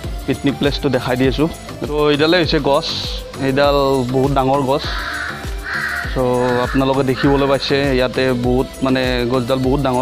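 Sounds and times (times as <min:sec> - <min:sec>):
music with steady beat: 0:00.0 - 0:10.0
crow cawing: 0:04.8 - 0:08.1.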